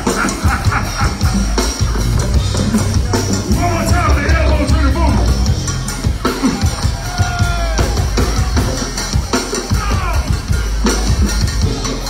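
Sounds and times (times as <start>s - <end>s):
drum kit and bass beat: 0.0s - 12.0s
live band playing: 0.0s - 12.0s.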